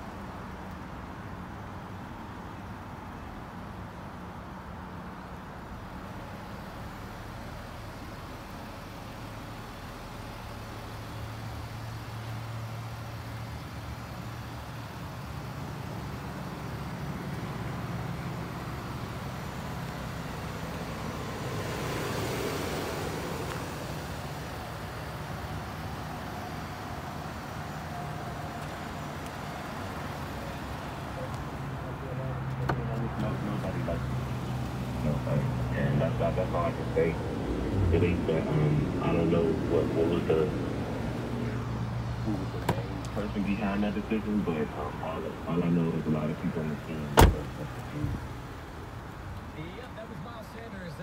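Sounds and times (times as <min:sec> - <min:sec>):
car engine idling: 0:00.0 - 0:51.0
broad rush of noise: 0:24.8 - 0:48.2.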